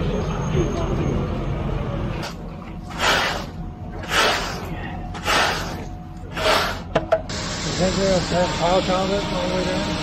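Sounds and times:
metal float scraping concrete: 2.9 - 6.9.

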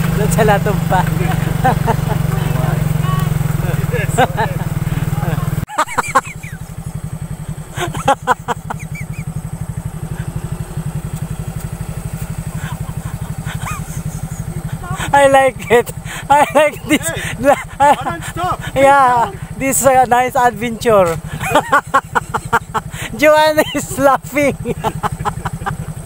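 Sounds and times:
scooter engine running: 0.0 - 26.0
voices and laughter: 0.6 - 26.0.

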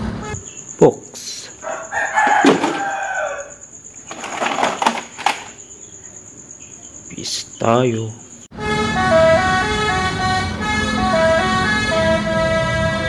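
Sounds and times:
rooster crowing: 1.5 - 3.8
plastic toy vehicles clicking: 2.2 - 3.0, 4.0 - 5.6.

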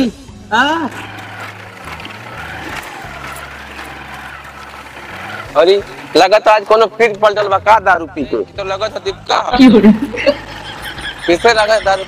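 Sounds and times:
small motorcycle engine running: 0.7 - 7.6, 10.0 - 12.0.

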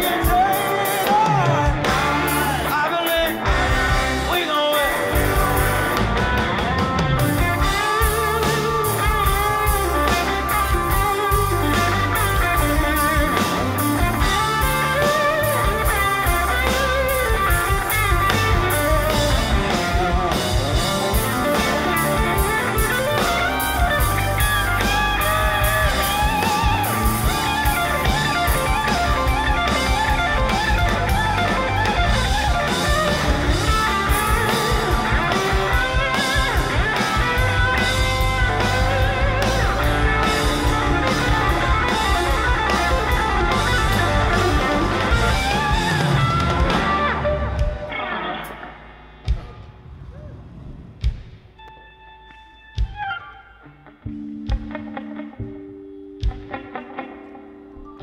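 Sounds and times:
electric guitar: 0.0 - 58.0
live band music: 0.0 - 58.0.

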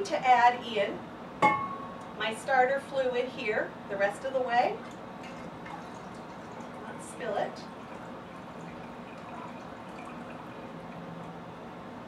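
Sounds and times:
liquid trickling into glass jar: 4.9 - 11.5.

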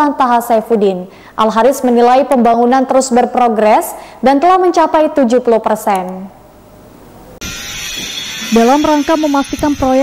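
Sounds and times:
woman's voice: 0.0 - 6.4, 8.5 - 10.0.

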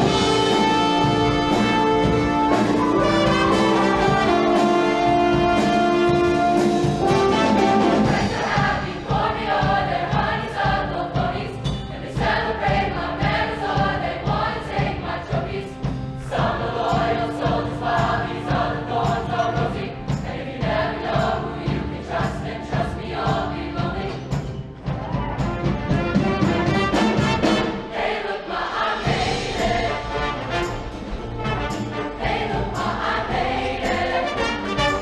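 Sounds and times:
choir singing: 0.0 - 35.0
instrumental accompaniment with beat: 0.0 - 35.0.

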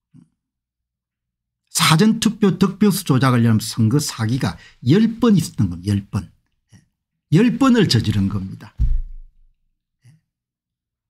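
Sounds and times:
man speaking: 1.7 - 6.3, 7.3 - 8.8.

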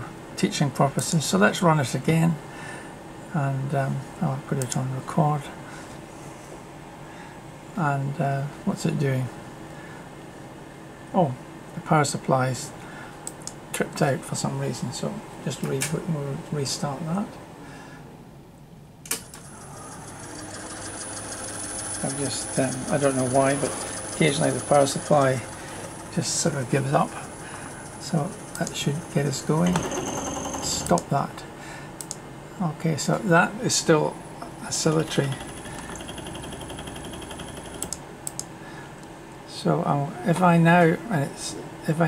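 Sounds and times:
sharp clicks: 32.0 - 32.2, 37.0 - 38.5.

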